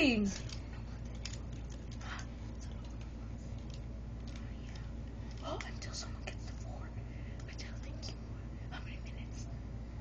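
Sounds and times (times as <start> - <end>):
low room hum: 0.0 - 10.0
faint clicks and rustles: 0.3 - 6.8.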